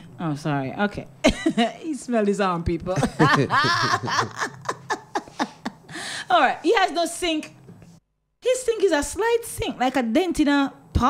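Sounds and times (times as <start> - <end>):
man and woman laughing: 3.0 - 6.0.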